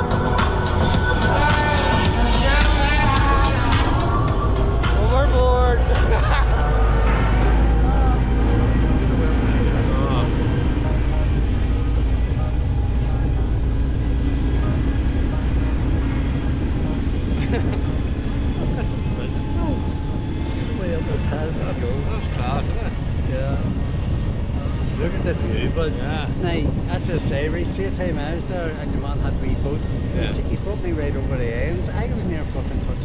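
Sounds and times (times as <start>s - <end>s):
boat engine: 0.0s - 33.0s
voices or music: 0.0s - 33.0s
wind rumble on microphone: 0.0s - 33.0s.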